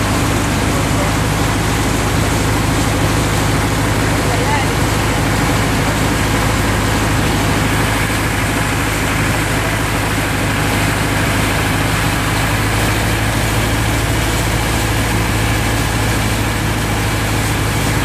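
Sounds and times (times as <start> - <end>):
boat engine running: 0.0 - 18.0
water rushing along hull: 0.0 - 18.0.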